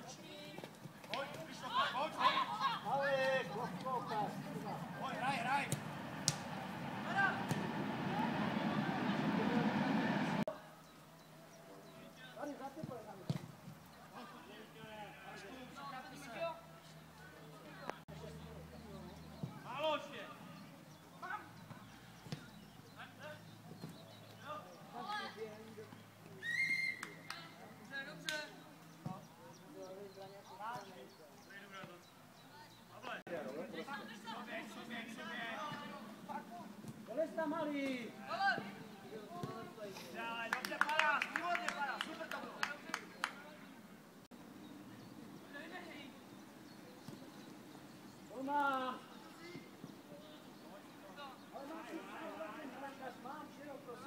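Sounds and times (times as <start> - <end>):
faint voices: 1.4 - 10.5.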